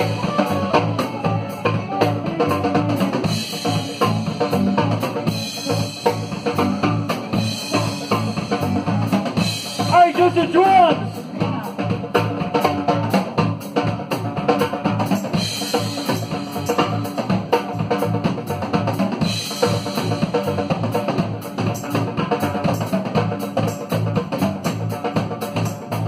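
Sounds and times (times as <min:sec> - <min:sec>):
bass guitar: 0:00.0 - 0:26.0
drum kit beat: 0:00.0 - 0:26.0
electric guitars: 0:00.0 - 0:26.0
keyboard: 0:00.0 - 0:26.0.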